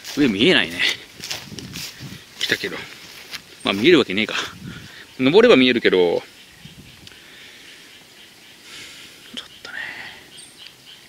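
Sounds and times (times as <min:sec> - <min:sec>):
breathy whisper-like sound: 0:08.6 - 0:10.4
faint high chirp: 0:09.3 - 0:11.0.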